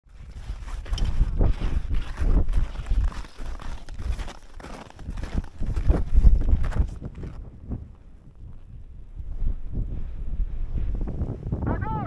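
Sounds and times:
crampon footsteps crunching in snow: 0.1s - 7.5s
wind buffeting microphone: 0.1s - 12.0s.

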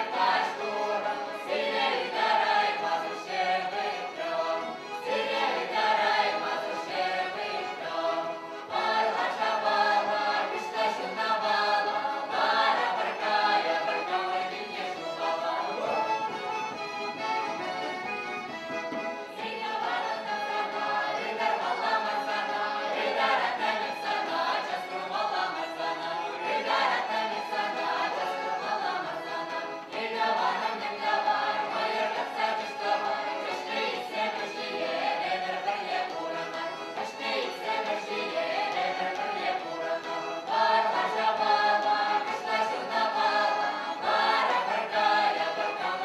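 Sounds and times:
mixed choir singing: 0.0s - 16.2s, 19.2s - 46.0s
fiddle: 0.0s - 46.0s.

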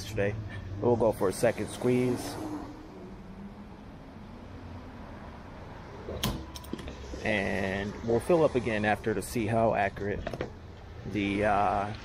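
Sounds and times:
fuel flowing rush: 0.3s - 10.1s.

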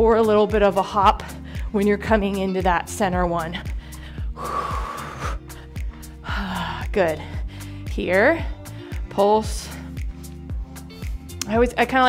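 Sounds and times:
workout music with drum beat: 0.0s - 12.0s.

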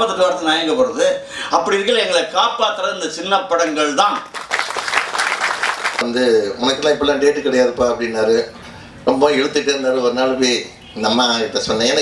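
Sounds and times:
audience applauding: 4.2s - 6.0s.

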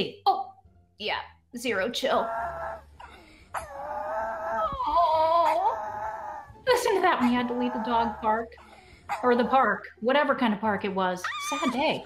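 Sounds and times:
dog howling: 2.1s - 2.9s, 3.6s - 6.6s.

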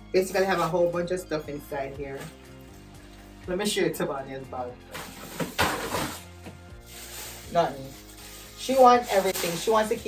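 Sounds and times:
background music: 0.0s - 10.0s
plastic bag rustling: 4.9s - 10.0s.

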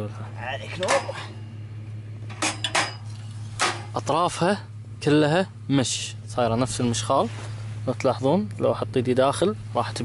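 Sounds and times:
steady low hum: 0.0s - 10.0s
metal legs clicking and clattering: 2.3s - 4.0s.

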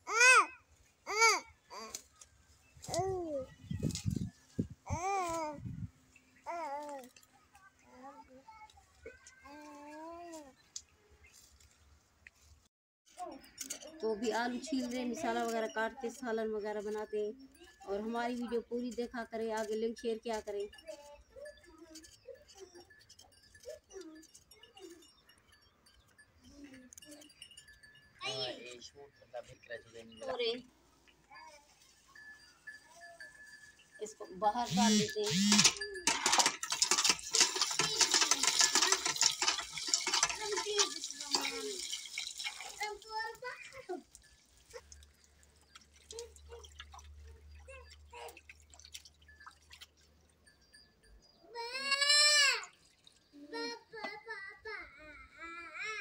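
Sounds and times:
chicken rinsed in steel bowl: 36.8s - 50.0s
water splashing and dripping: 36.8s - 50.2s.

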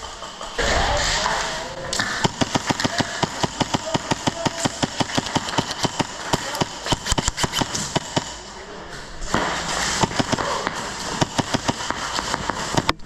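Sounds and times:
airsoft gun rapid firing: 2.0s - 8.5s, 9.3s - 13.0s.

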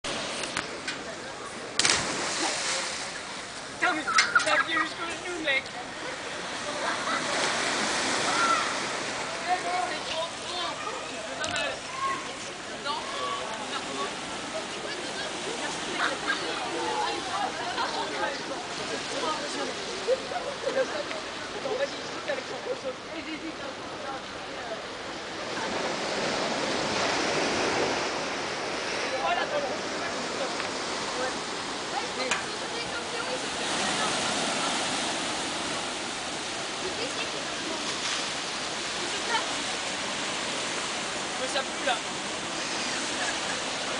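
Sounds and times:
sea waves breaking on shore: 0.0s - 20.6s, 24.8s - 43.9s
surf washing: 0.0s - 43.9s
child shouting: 8.3s - 8.8s, 11.9s - 12.2s.

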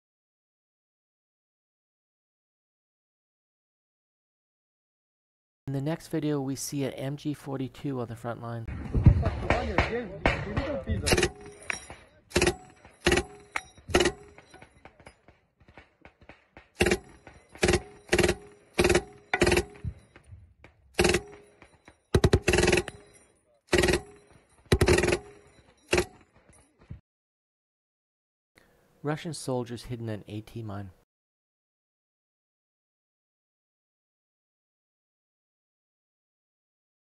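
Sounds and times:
machine gun firing bursts: 12.3s - 14.6s, 16.5s - 20.0s, 21.0s - 26.2s.

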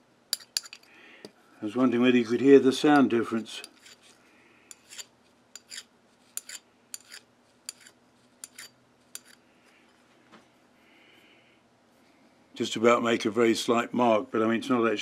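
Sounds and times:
hand file scraping metal: 0.3s - 0.8s, 3.0s - 9.4s.

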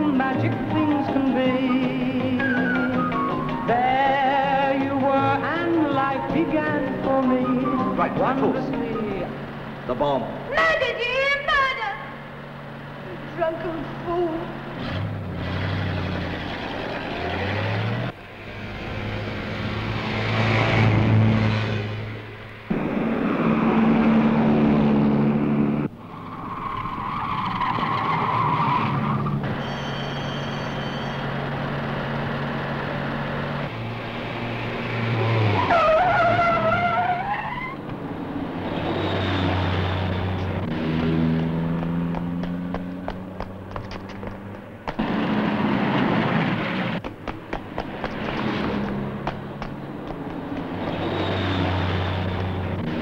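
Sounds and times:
car engines revving: 0.0s - 29.7s, 31.2s - 53.0s
tyre squeal: 26.0s - 31.6s, 35.4s - 37.9s.

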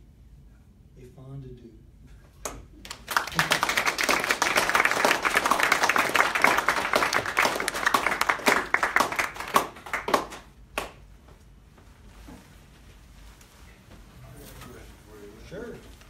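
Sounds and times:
audience applauding: 2.8s - 11.0s.

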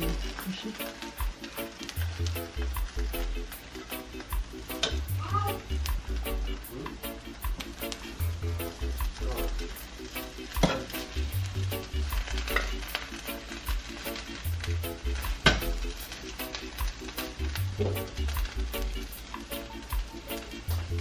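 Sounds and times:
background music with steady beat: 0.0s - 21.0s.

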